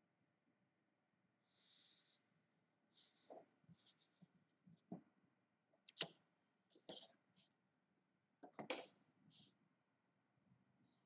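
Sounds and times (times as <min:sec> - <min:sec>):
pencil scratching on paper: 0:02.9 - 0:04.3, 0:06.7 - 0:07.5.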